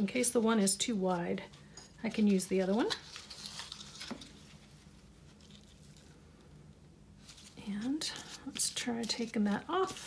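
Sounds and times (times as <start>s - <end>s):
ribbon rustling over paper: 1.1s - 6.6s, 7.2s - 10.0s.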